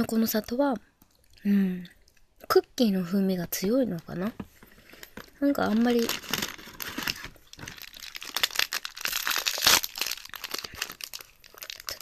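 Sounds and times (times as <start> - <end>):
snack wrapper crinkling: 5.0 - 12.0.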